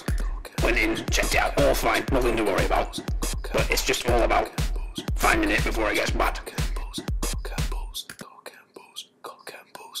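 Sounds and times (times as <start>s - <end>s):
person whispering: 4.7s - 10.0s.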